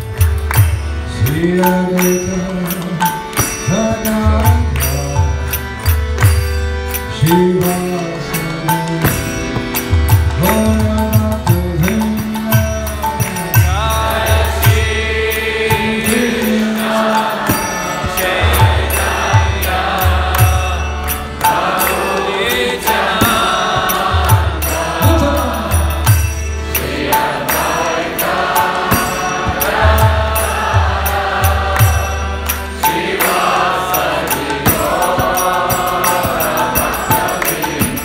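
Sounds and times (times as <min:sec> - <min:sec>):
harmonium: 0:00.0 - 0:38.0.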